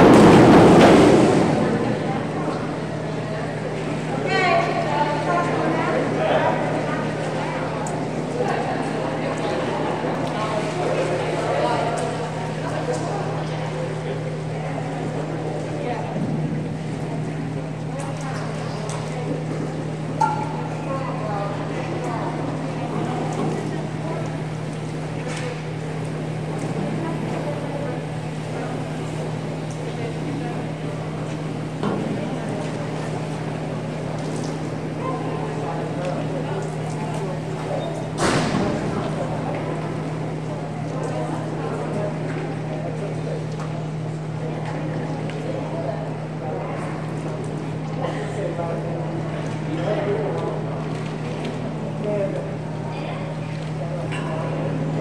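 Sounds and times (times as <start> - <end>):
background voices and chatter: 0.0 - 55.0
steady low hum: 0.0 - 55.0.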